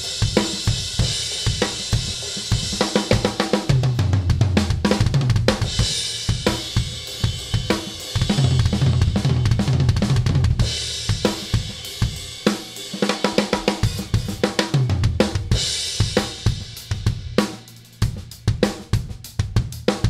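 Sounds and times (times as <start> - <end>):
drum kit rock groove: 0.0 - 20.0.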